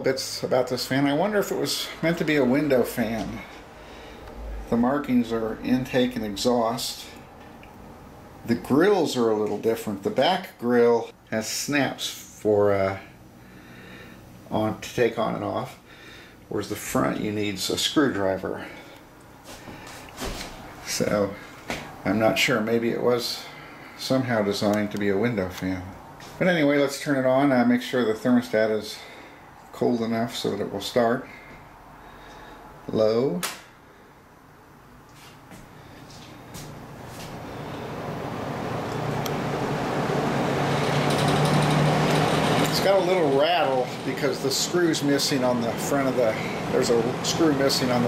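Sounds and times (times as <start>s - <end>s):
box fan motor hum: 0.0s - 26.6s, 34.6s - 48.0s
fan grill rattle: 38.8s - 48.0s.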